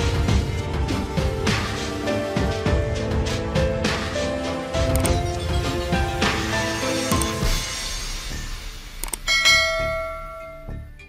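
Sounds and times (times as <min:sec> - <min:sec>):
quick clicks: 0:04.9 - 0:05.2, 0:07.1 - 0:07.5, 0:09.0 - 0:09.3
bright bell-like chime: 0:09.3 - 0:11.0.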